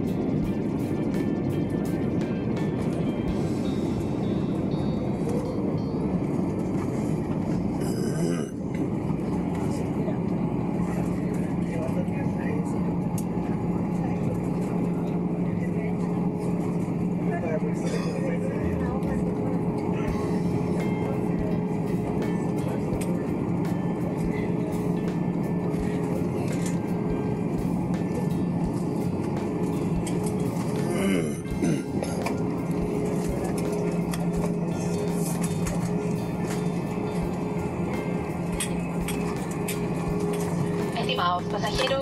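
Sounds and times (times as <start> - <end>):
aircraft rolling down runway: 0.0 - 42.0
steady low hum: 0.0 - 42.0.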